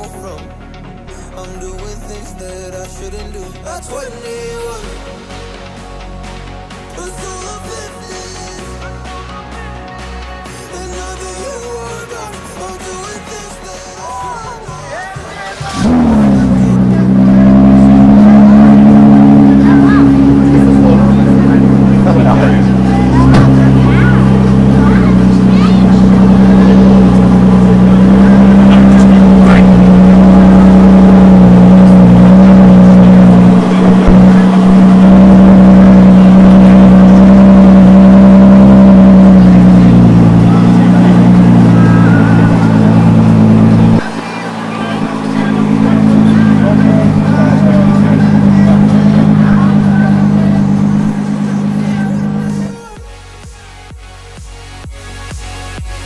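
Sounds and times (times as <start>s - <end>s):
car engine running loudly: 15.4s - 56.0s.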